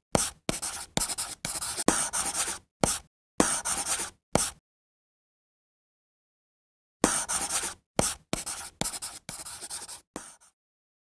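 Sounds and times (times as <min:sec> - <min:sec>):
chalk scratching on blackboard: 0:00.1 - 0:04.6, 0:07.0 - 0:10.6.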